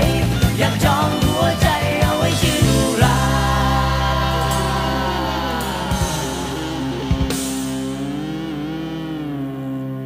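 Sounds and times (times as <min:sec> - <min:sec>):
pop-rock band holding chord: 0:00.0 - 0:10.0.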